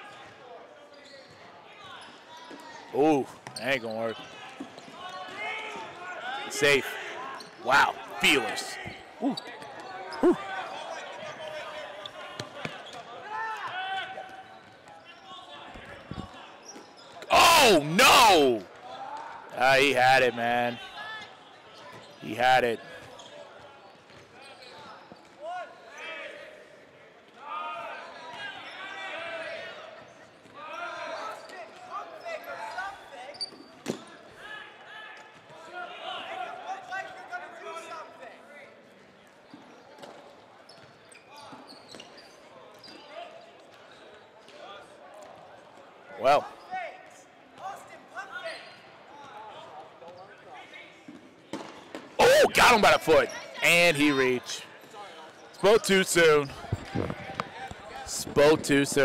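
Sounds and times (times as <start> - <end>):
balls bouncing on wooden floor: 56.6 - 58.0.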